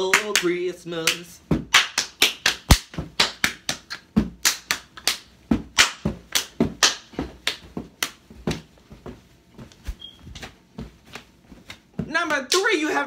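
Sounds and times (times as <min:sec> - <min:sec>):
hands clapping: 0:00.0 - 0:08.2, 0:11.7 - 0:12.7.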